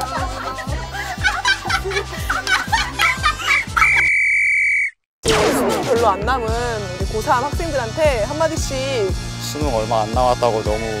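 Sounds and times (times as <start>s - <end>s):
upbeat background music: 0.0s - 4.1s, 5.3s - 11.0s.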